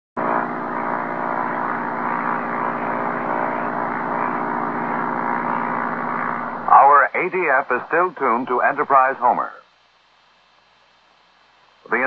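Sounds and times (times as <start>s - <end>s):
propeller airplane engine drone: 0.2s - 10.9s.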